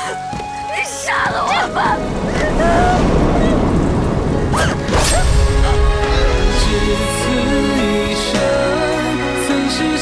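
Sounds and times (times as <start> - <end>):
heavy rain rushing: 0.0 - 10.0
deep rumble: 1.7 - 8.7.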